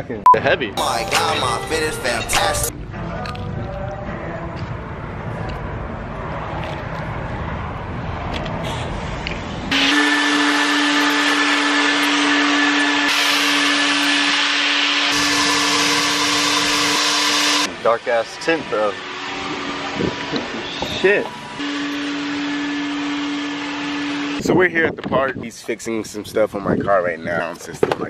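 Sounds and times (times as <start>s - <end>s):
vacuum hose whining: 9.7s - 24.4s.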